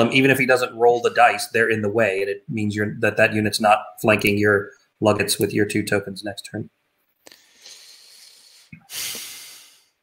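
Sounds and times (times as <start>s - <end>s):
breath into microphone: 7.3s - 10.0s.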